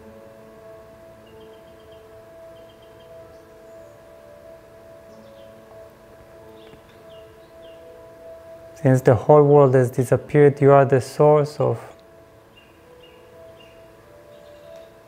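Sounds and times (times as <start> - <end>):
soft drone music: 0.0 - 15.0.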